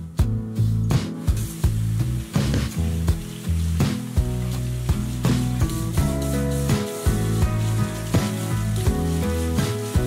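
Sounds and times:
plucked music with steady beat: 0.0s - 10.0s.

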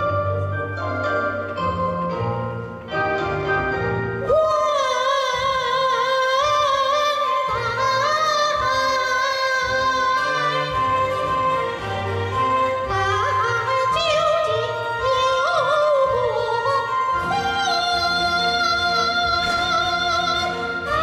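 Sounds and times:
instrumental accompaniment: 0.0s - 21.0s
woman singing opera-style: 4.2s - 21.0s.

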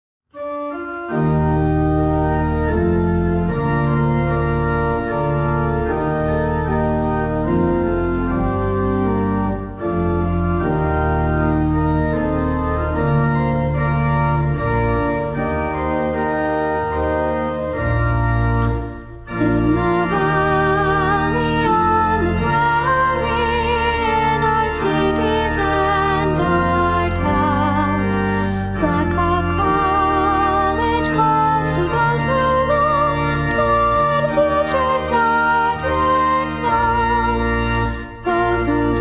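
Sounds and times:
organ playing held chords: 0.4s - 39.0s.

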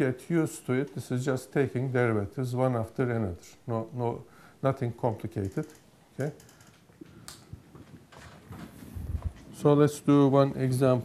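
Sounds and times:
man speaking: 0.0s - 6.4s, 9.6s - 11.0s.

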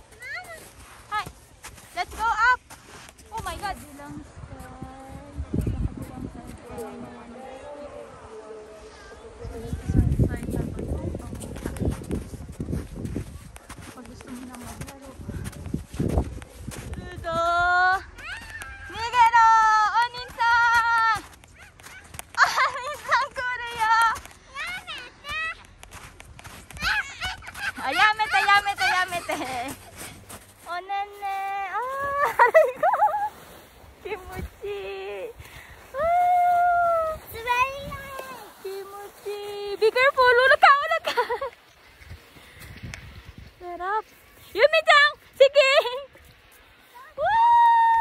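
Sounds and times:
children shouting and squealing: 17.9s - 19.9s, 20.5s - 25.7s, 26.5s - 30.1s, 35.8s - 39.2s, 46.8s - 48.0s
child's high-pitched yelps: 18.0s - 19.1s, 26.8s - 29.0s.

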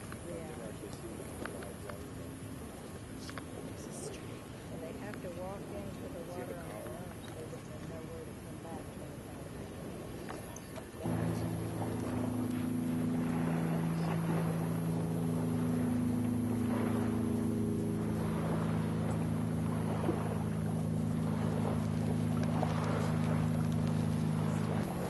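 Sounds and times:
steady low motor hum: 0.0s - 25.0s.

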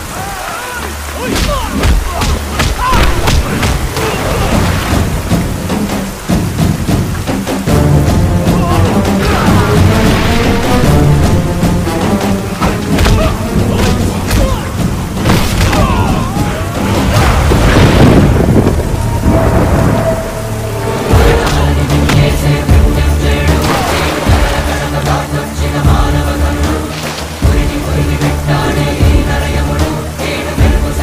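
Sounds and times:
heavy rain falling: 0.0s - 31.0s
music with low sustained notes: 2.4s - 31.0s
low rumble of thunder: 15.8s - 21.4s.

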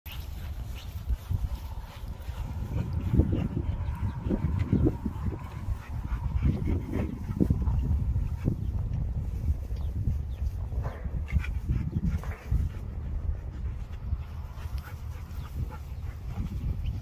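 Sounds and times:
steady low rumble: 0.1s - 17.0s
dog panting: 0.3s - 8.8s, 10.9s - 17.0s.

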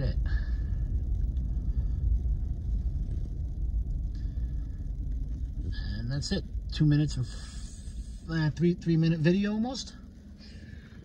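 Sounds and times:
engine and tyre rumble in cab: 0.0s - 11.0s.

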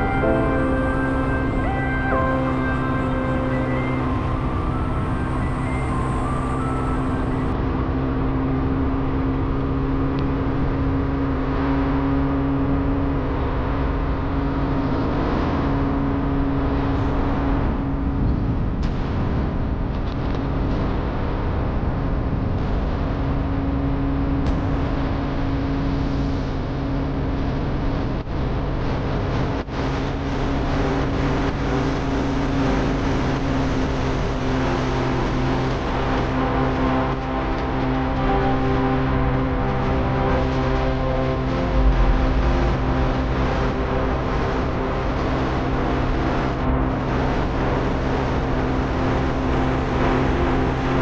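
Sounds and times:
vehicle engine hum: 0.0s - 51.0s.

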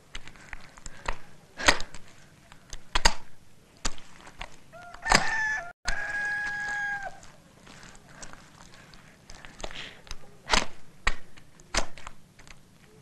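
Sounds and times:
rooster crowing: 4.7s - 7.4s.

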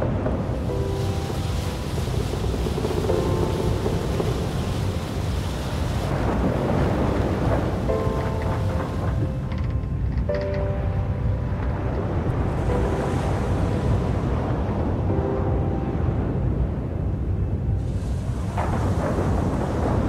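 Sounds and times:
deep continuous rumble: 0.0s - 20.0s
heavy waves: 0.0s - 20.0s
sustained orchestral chords: 7.8s - 17.8s.

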